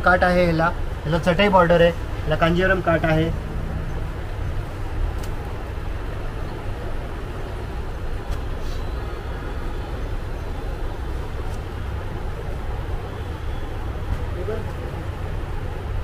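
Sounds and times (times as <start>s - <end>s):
low rumble and hiss: 0.0s - 16.0s.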